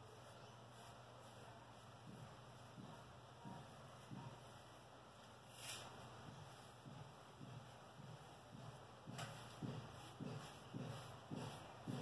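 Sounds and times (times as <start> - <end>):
hand rubbing skin: 0.1 - 12.0.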